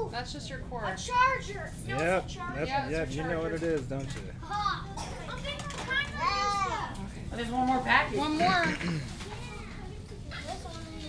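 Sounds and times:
background chatter: 0.0 - 11.0
children and adults voices: 0.0 - 11.0
high-pitched child's voice: 4.4 - 7.0.

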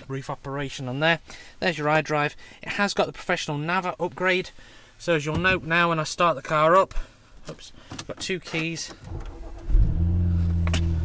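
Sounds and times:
car engine flaring and idling: 9.1 - 11.0.

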